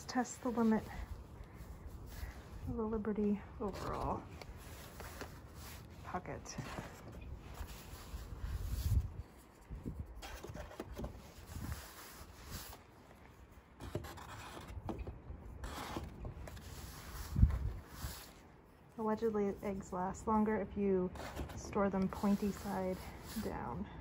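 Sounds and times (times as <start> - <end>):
fabric rustling: 0.0 - 13.8.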